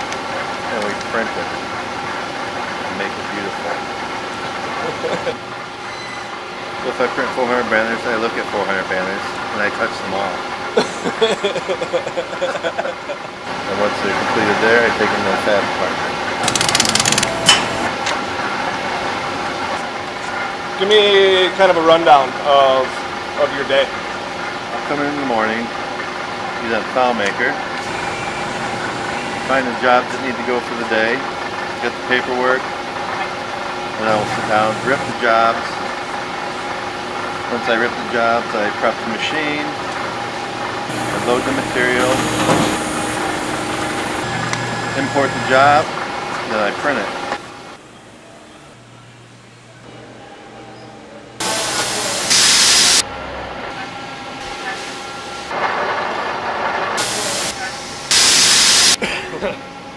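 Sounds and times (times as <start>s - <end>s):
machinery humming: 0.0s - 55.6s, 57.0s - 59.9s.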